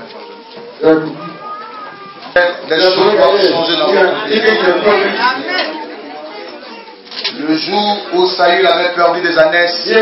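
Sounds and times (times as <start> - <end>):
indistinct speech and chatter: 0.0 - 10.0.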